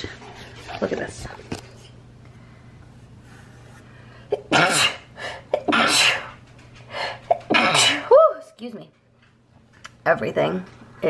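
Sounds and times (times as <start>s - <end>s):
woman coughing hard: 4.4s - 6.3s, 7.3s - 8.1s.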